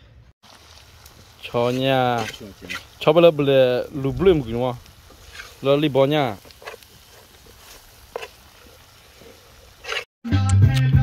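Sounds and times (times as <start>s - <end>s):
fork stirring meat in metal pot: 1.6s - 3.2s, 6.4s - 10.1s
fork scraping pot: 1.7s - 2.9s, 5.2s - 5.6s, 6.4s - 10.1s.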